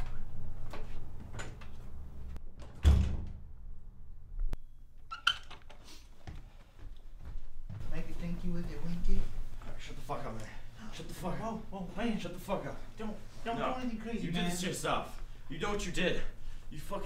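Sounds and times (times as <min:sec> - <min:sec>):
door shutting with thud: 0:02.6 - 0:03.5.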